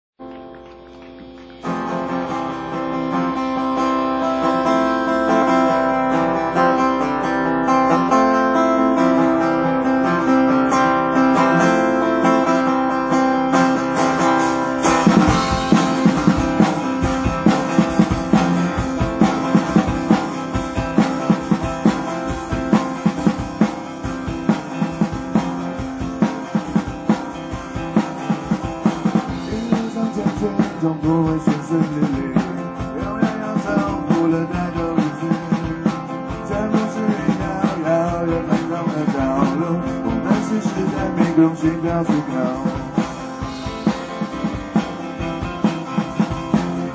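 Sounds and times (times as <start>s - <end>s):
acoustic guitar chords: 0.2s - 46.9s
drum kit rock beat: 0.2s - 46.9s
sustained backing: 1.6s - 46.9s.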